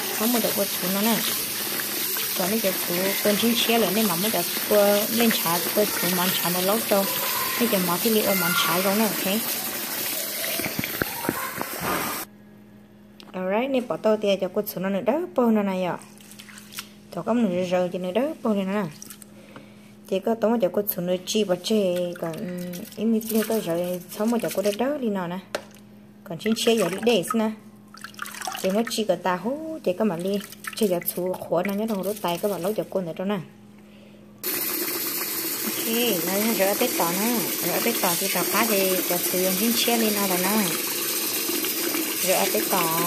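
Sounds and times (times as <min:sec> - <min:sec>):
woman talking: 0:00.0 - 0:01.4, 0:02.4 - 0:09.5, 0:13.3 - 0:16.1, 0:17.1 - 0:19.0, 0:20.1 - 0:25.5, 0:26.2 - 0:27.7, 0:28.6 - 0:33.5, 0:35.6 - 0:40.8, 0:42.2 - 0:43.0
tap water pouring into basin: 0:00.0 - 0:12.3, 0:27.9 - 0:28.9, 0:34.4 - 0:43.0
rice sloshing in water: 0:21.8 - 0:24.9, 0:26.5 - 0:27.3, 0:30.1 - 0:32.8.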